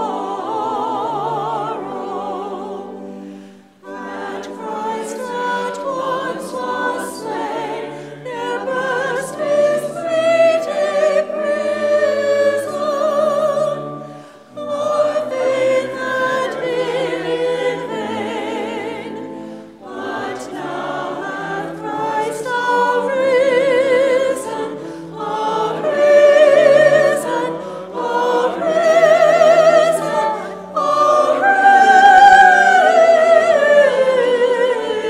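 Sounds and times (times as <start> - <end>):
choir singing: 0.0 - 35.0.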